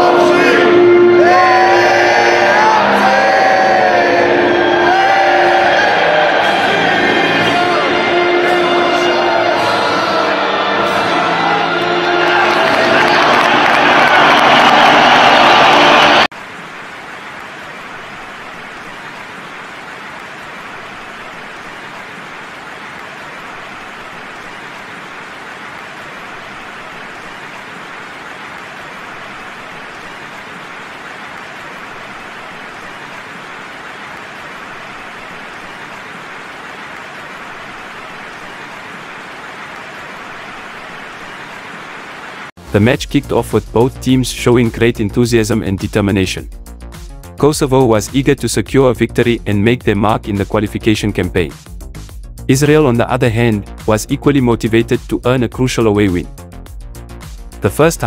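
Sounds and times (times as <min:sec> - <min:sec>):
music: 0:00.0 - 0:16.3, 0:42.6 - 0:58.0
crowd noise: 0:00.0 - 0:43.7
stadium crowd cheering: 0:00.0 - 0:46.0.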